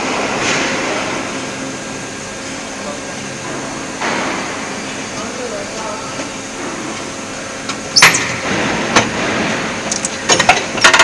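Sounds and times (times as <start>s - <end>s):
machine hum and hiss: 0.0s - 11.0s.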